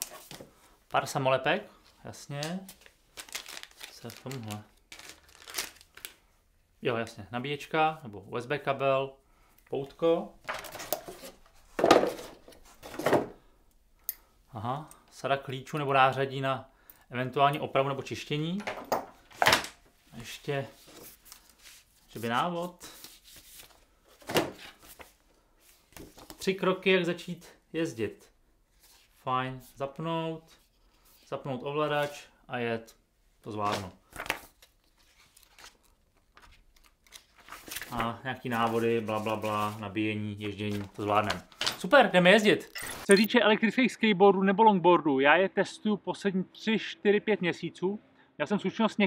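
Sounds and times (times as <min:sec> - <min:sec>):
cardboard packaging handling: 0:02.4 - 0:06.2
paper pages rustling: 0:02.4 - 0:06.2, 0:19.5 - 0:26.4, 0:33.6 - 0:43.1.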